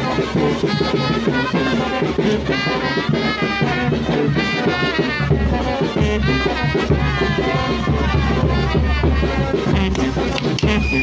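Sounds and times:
brass band playing lively tune: 0.0 - 11.0.

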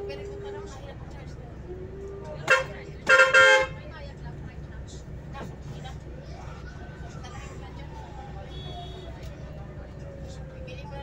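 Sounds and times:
bus engine drone: 0.0 - 11.0
bus horn toots: 2.4 - 3.9.

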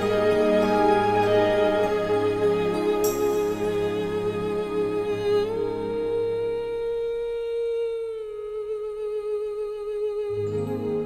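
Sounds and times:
bass: 0.0 - 11.0
long held melodic note: 0.0 - 11.0.

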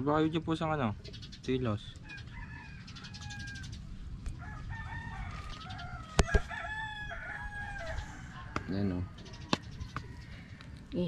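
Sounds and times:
rooster crowing: 2.1 - 3.7, 4.4 - 9.2.

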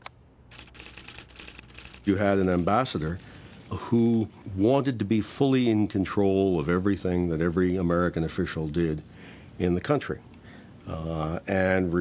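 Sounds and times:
rapid typewriter clicks: 0.0 - 2.2.

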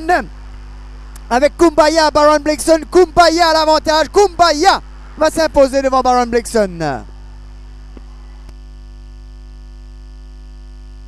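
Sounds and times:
buzzy electrical mains hum: 0.0 - 11.0.

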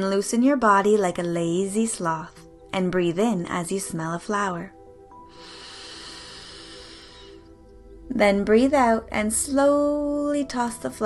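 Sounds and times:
soft background music: 0.0 - 11.0
slow inhale through nose: 5.2 - 7.6.

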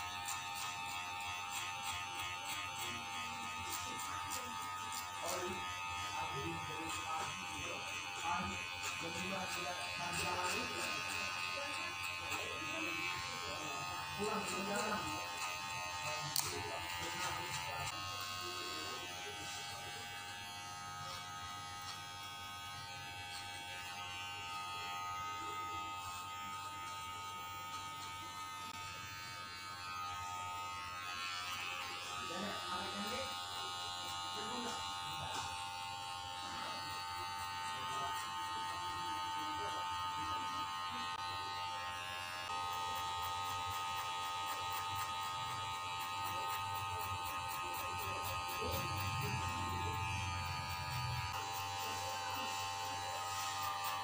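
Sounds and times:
electric hair clippers buzzing: 0.0 - 54.0
faint voices: 0.1 - 54.0.

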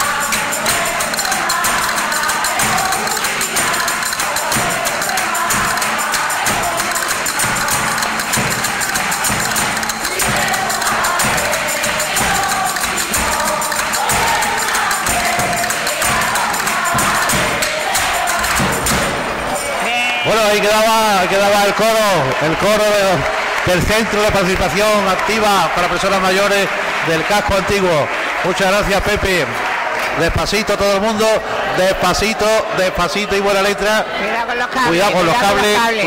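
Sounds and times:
tambourine jingling: 0.0 - 33.3
group singing to music: 0.0 - 36.0.

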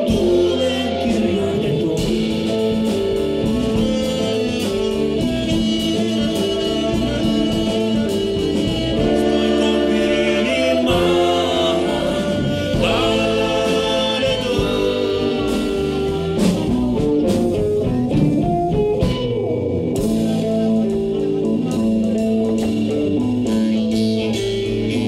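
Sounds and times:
live band playing: 0.0 - 25.0.

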